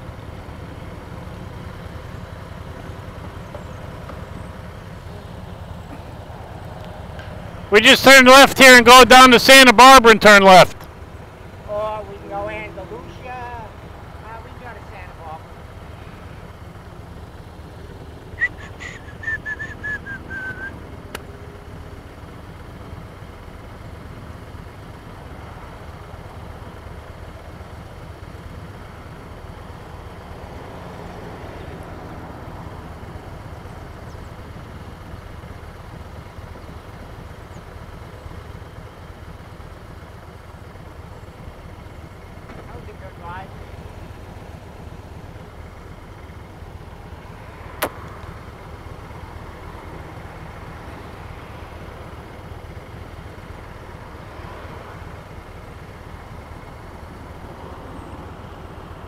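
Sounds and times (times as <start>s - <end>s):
motorcycle engines idling: 0.0s - 59.0s
high falling whistle: 18.4s - 20.8s.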